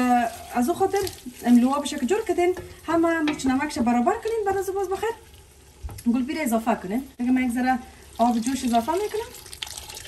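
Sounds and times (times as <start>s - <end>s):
sauce sizzling: 0.0s - 7.2s.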